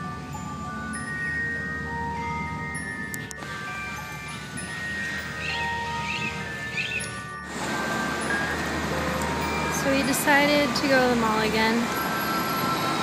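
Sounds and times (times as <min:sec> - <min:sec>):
bell-like chiming tones: 0:00.0 - 0:13.0
busy road traffic: 0:00.0 - 0:13.0.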